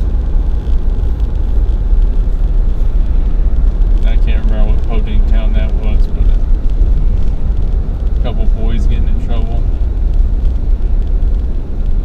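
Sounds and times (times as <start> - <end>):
road and engine drone inside truck: 0.0 - 12.0.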